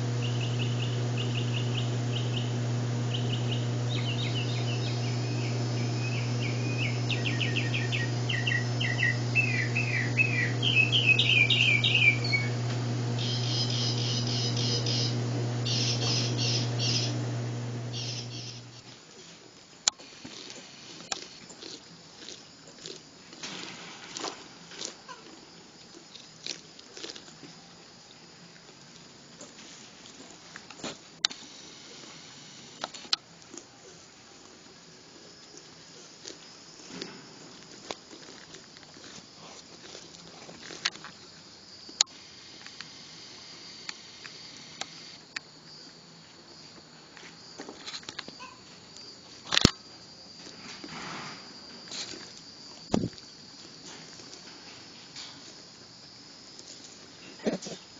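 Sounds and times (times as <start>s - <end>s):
faint high-pitched hum: 0.0s - 18.9s
animals chewing corn: 0.0s - 43.0s, 50.3s - 57.9s.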